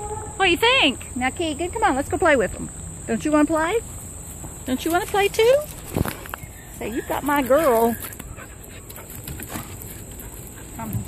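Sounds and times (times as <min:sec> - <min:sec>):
dogs scuffling on gravel: 0:04.2 - 0:11.0.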